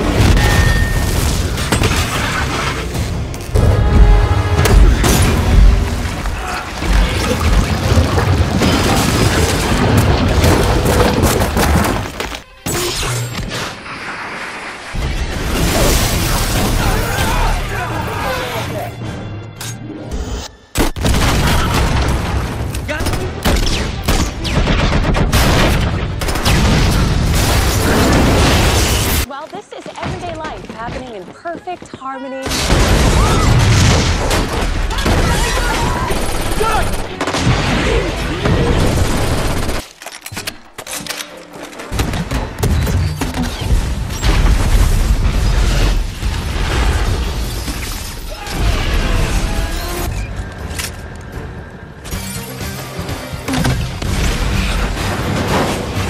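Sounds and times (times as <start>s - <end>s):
film score music: 0.0s - 8.6s, 16.7s - 27.4s, 34.4s - 45.7s, 48.4s - 56.0s
grenade explosion: 0.0s - 12.2s, 21.0s - 29.3s, 32.5s - 36.2s, 42.5s - 49.7s.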